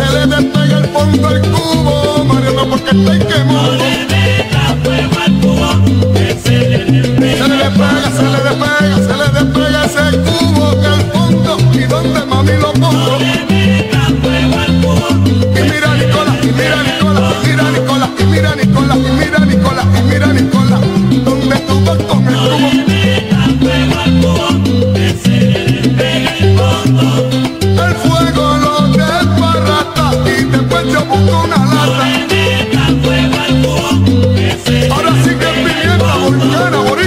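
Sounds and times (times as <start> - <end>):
bass line: 0.0 - 37.0
latin percussion: 0.0 - 37.0.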